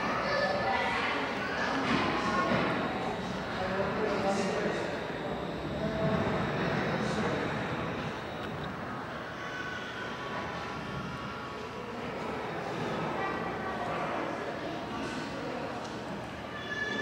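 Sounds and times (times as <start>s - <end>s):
room noise rumble: 0.0s - 16.5s
murmur of distant voices: 0.0s - 17.0s.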